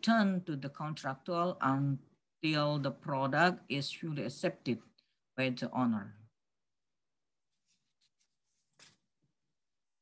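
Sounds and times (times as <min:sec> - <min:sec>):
brief rustle: 0:07.6 - 0:09.1.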